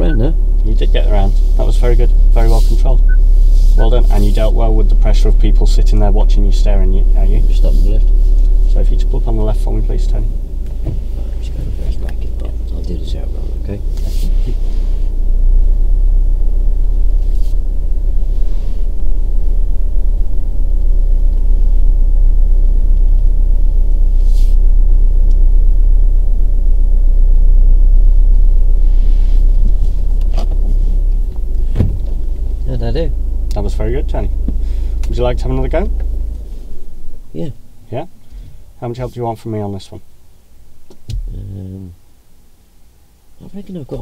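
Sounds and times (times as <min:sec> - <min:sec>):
car cabin rumble: 0:00.0 - 0:44.0
man humming mm: 0:41.2 - 0:42.0.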